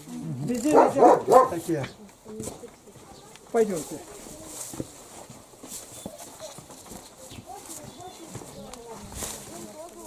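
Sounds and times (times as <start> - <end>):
faint voices: 0.0 - 10.0
footsteps on wooden floorboards: 1.0 - 10.0.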